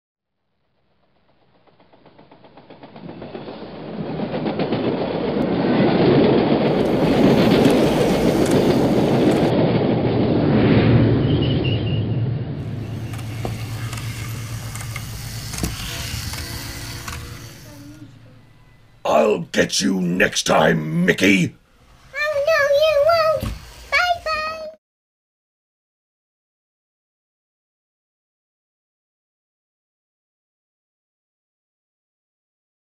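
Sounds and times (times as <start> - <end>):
train running: 0.6 - 10.2, 12.6 - 24.8.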